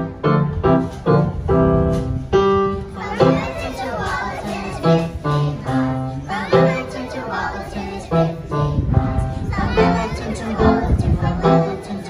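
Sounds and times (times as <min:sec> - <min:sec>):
keyboard accompaniment: 0:00.0 - 0:12.0
children's choir singing: 0:02.5 - 0:12.0.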